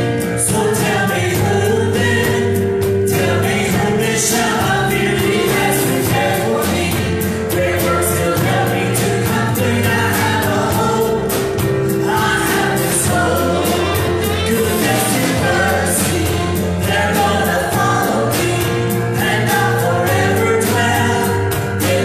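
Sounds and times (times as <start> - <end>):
live band: 0.0 - 22.0
steady drum beat: 0.0 - 22.0
women singing gospel song: 0.2 - 22.0.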